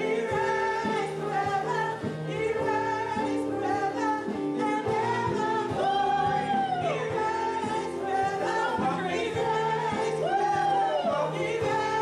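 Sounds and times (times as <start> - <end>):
gospel group singing: 0.0 - 12.0
instrumental accompaniment: 0.0 - 12.0.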